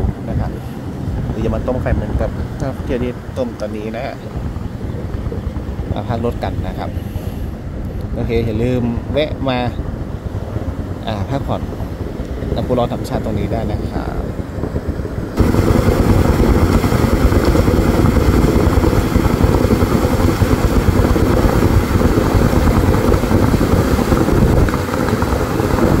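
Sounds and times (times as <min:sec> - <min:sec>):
geyser jet spraying water: 0:00.0 - 0:26.0.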